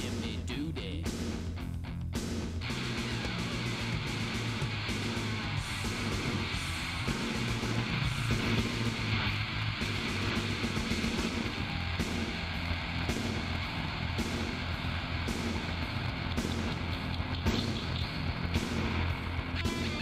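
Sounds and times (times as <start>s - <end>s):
bass: 0.0s - 20.0s
distorted electric guitar: 0.0s - 20.0s
drums: 0.0s - 20.0s.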